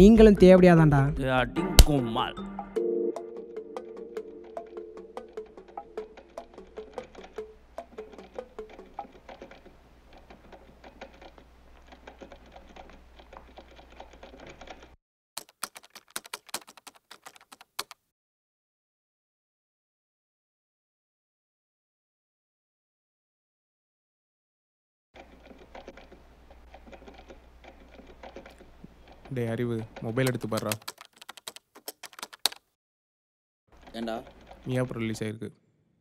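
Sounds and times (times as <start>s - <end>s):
keyboard typing: 3.8s - 18.0s, 25.2s - 32.7s, 33.8s - 34.9s.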